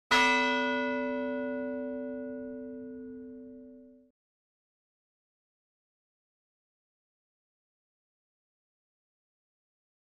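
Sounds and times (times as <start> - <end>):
bell-like chime: 0.1 - 4.1.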